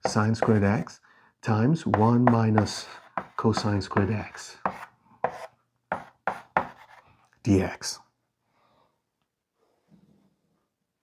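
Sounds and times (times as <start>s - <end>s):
chalk scraping on blackboard: 0.0s - 0.9s, 1.9s - 7.0s.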